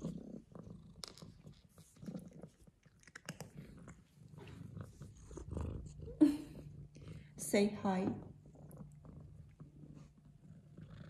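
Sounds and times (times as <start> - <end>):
cat purring: 0.0 - 11.0.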